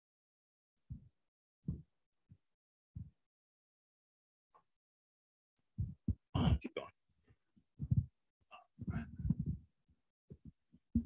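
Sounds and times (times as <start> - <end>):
faint muffled voice fragments: 6.4 - 6.9.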